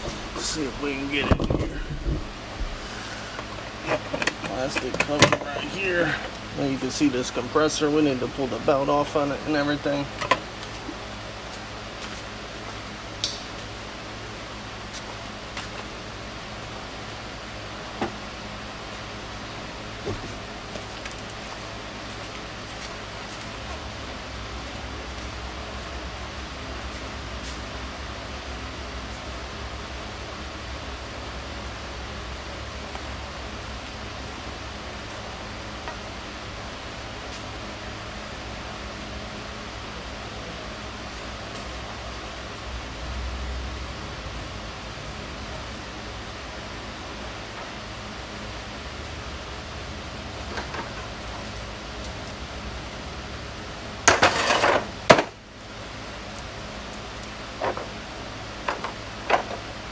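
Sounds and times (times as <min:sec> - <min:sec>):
workshop low hum: 0:00.0 - 0:59.9
clatter of hard objects: 0:54.1 - 0:55.3.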